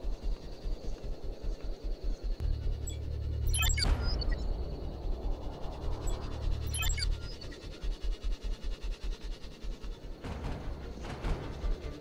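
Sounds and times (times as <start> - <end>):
fast low pulse: 1.3 - 8.5
low bass drone: 2.4 - 7.9.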